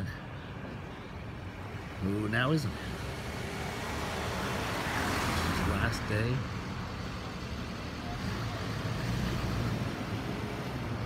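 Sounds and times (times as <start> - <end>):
vehicles driving by: 0.0 - 11.0.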